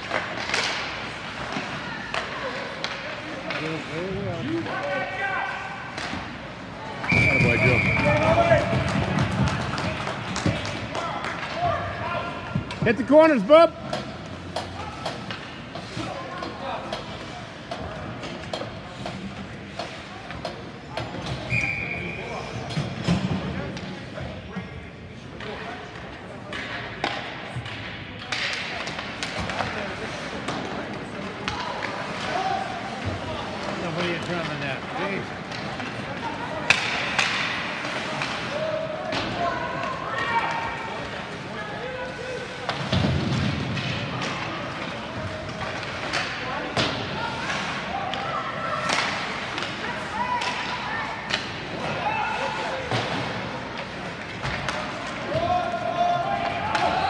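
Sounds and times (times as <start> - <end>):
hockey sticks and puck clacking: 0.0 - 57.0.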